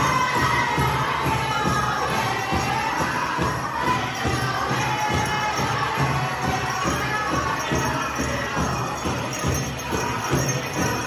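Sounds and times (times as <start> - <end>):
crowd noise: 0.0 - 11.0
drum beaten in steady rhythm: 0.0 - 11.0
group singing high chorus: 0.0 - 11.0.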